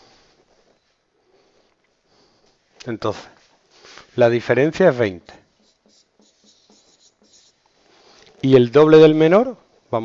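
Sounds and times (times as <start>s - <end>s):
marker pen scratching on whiteboard: 4.6s - 8.0s.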